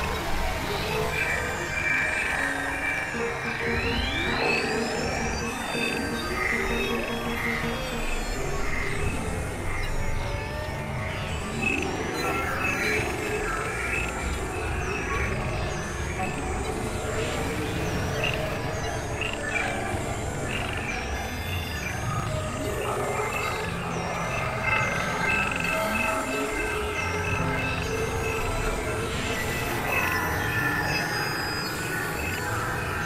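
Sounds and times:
electronic tones and drones: 0.0s - 33.0s.

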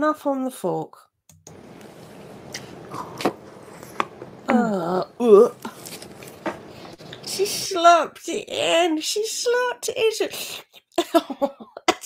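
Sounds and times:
mouth clicks and smacks eating: 2.5s - 4.2s.

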